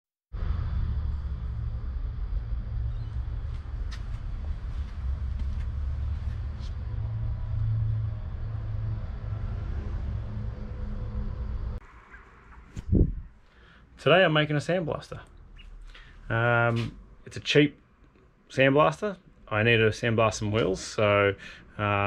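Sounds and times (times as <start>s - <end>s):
low steady rumble: 0.4s - 11.8s, 12.6s - 13.4s.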